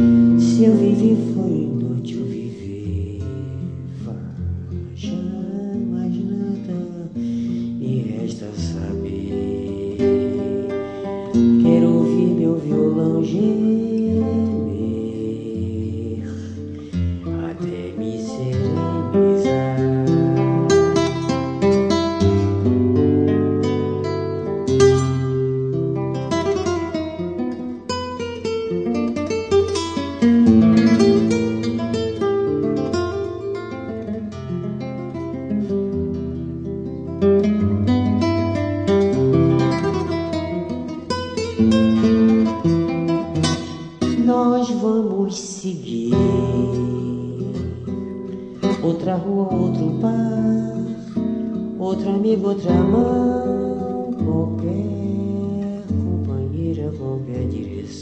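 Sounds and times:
nylon-string acoustic guitar: 0.0 - 58.0.

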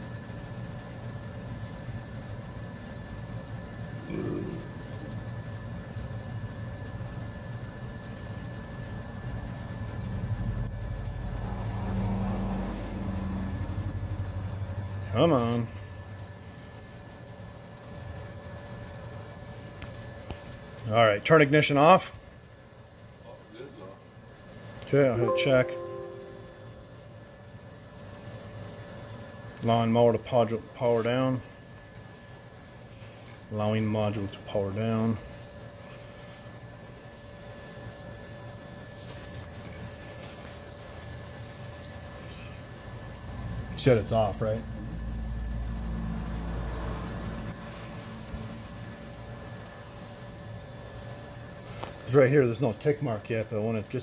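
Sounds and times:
workshop hiss and hum: 0.0 - 54.0
faint high whine: 24.8 - 27.4.

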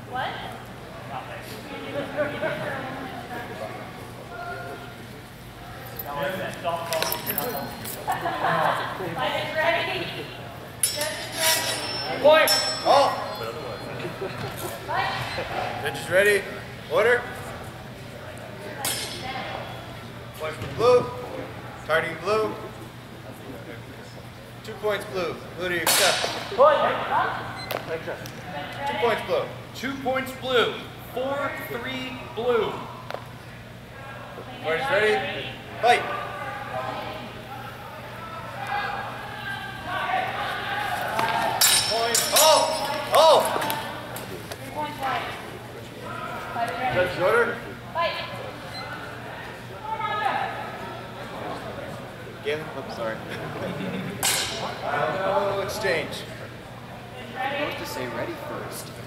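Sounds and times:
voices and laughter: 1.4 - 3.6, 7.4 - 10.6, 13.6 - 15.9, 52.8 - 55.6
steel swords clinking: 10.8 - 13.8, 18.8 - 19.2, 41.6 - 43.3, 54.2 - 54.7.

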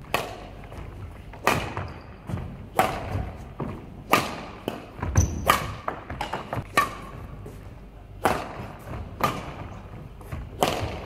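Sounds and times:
badminton racket hitting shuttlecock: 0.0 - 7.2, 8.2 - 9.9, 10.5 - 11.0.

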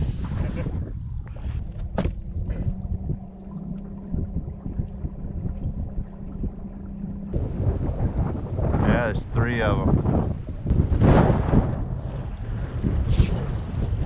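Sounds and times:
wind noise: 0.0 - 14.0.

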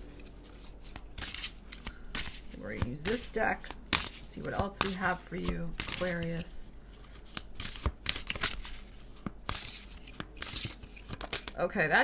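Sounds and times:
cards being shuffled: 0.0 - 11.6.

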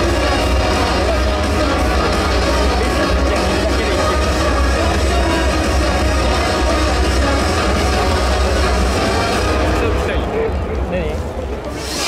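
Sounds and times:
music with steady bass: 0.0 - 12.0.

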